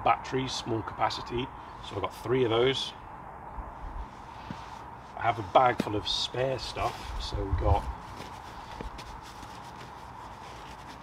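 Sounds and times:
cloth rustling and rubbing: 0:03.8 - 0:11.0.

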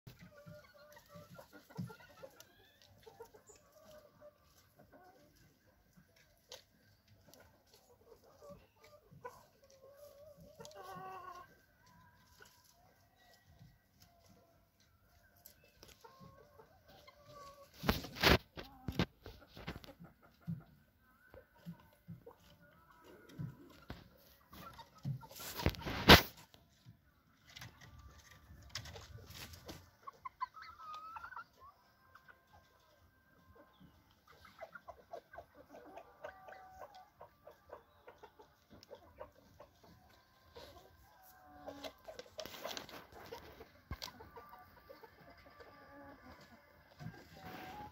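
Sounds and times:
chickens clucking softly: 0:00.1 - 0:47.9.

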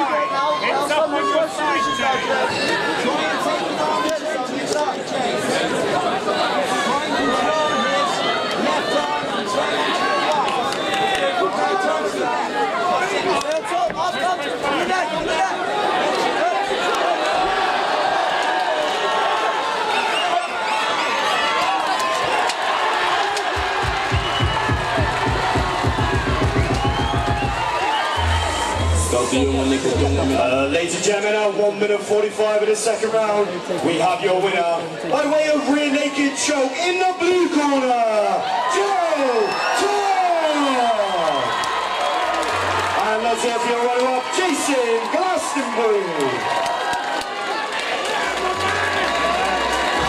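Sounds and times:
crowd shouting and cheering: 0:00.0 - 0:50.0
music playing in hall: 0:23.4 - 0:31.4, 0:42.2 - 0:43.6, 0:48.1 - 0:50.0
rapid pulsing bass: 0:23.6 - 0:30.8.

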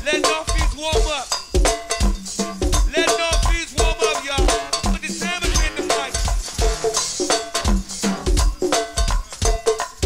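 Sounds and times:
cowbell: 0:00.0 - 0:10.0
live band percussion groove: 0:00.0 - 0:10.0.

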